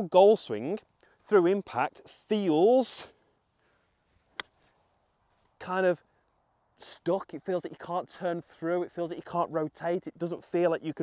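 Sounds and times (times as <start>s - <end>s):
golf club hitting ground click: 4.3s - 4.6s.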